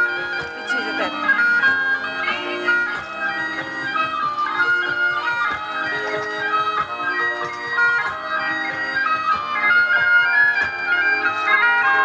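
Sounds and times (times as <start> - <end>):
bagpipe music: 0.0 - 12.0.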